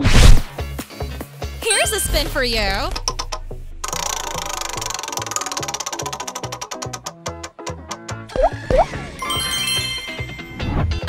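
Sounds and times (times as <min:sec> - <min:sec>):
background music: 0:00.4 - 0:11.0
prize wheel ticking: 0:03.0 - 0:07.0.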